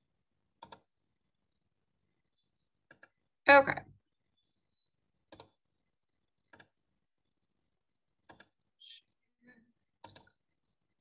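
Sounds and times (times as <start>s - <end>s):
computer mouse double-clicks: 0.6s - 0.9s, 2.8s - 3.2s, 5.3s - 5.6s, 6.5s - 6.8s, 10.0s - 10.4s.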